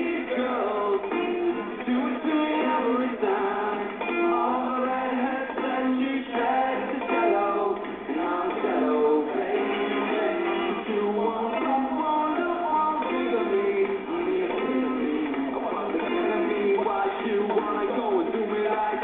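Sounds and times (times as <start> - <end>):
electric guitar: 0.0 - 19.0
male lead vocal: 0.0 - 19.0.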